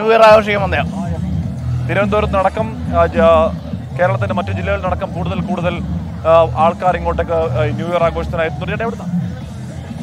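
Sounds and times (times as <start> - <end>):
background music: 0.0 - 10.0
steady low rumble: 0.0 - 10.0
voices talking: 0.0 - 10.0.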